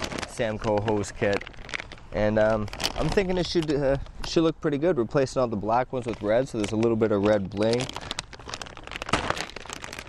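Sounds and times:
plastic bag crinkling: 0.0 - 4.5, 5.6 - 10.0.

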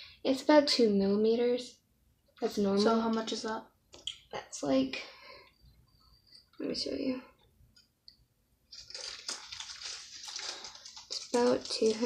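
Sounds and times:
water splashing in plastic cup: 8.7 - 12.0.

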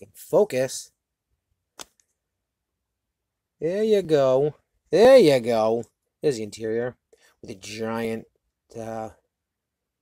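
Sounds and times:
sharp click: 1.8 - 2.1.

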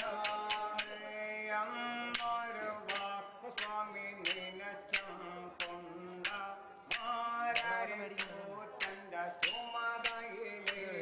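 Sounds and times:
sharp percussive strikes: 0.0 - 1.2, 2.2 - 11.0.

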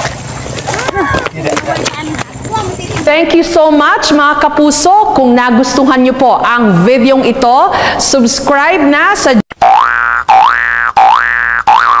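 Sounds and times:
cartoon boing sound effect: 9.6 - 12.0.

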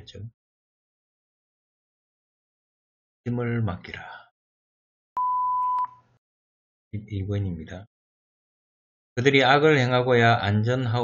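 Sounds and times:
electronic beep: 5.2 - 6.0.

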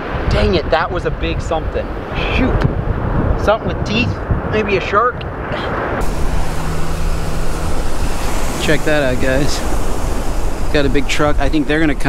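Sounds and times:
surf: 0.0 - 12.0
wind: 0.0 - 12.0
truck engine humming: 6.0 - 12.0.

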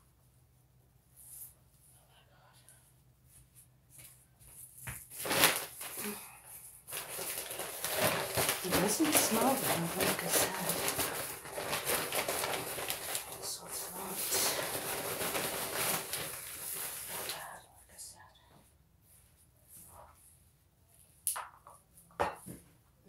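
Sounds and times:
rustling soil and plastic containers: 6.8 - 17.5.

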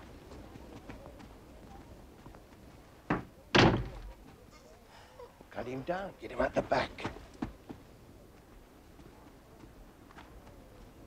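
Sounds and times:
shed door knocking: 3.1 - 4.1
shed door banging open: 3.1 - 4.2.

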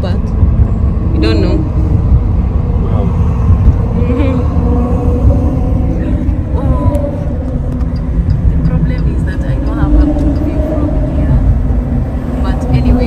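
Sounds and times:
car road rumble: 0.0 - 13.0.

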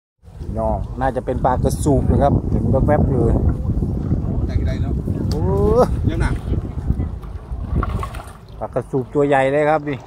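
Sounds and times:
water sloshing around wading legs: 5.2 - 10.0.

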